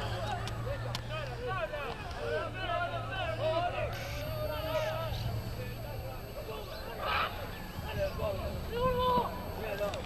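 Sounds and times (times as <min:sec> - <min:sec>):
people shouting on a field: 0:06.6 - 0:09.7.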